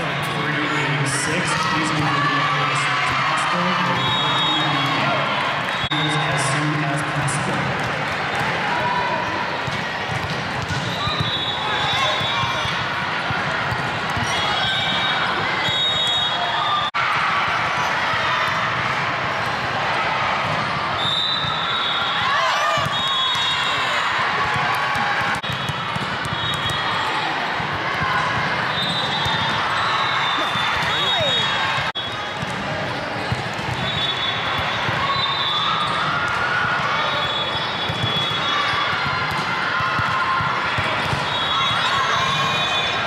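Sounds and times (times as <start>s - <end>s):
many voices in a hall: 0.0s - 43.0s
volleyballs hit and bouncing: 1.5s - 15.9s, 16.8s - 43.0s.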